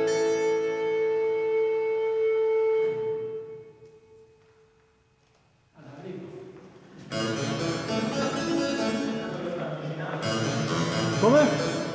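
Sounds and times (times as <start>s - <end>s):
harpsichord chords: 7.1s - 11.9s.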